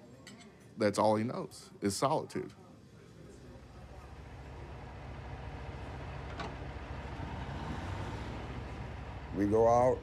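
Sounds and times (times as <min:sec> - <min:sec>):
diesel engine idling: 0:03.7 - 0:10.0.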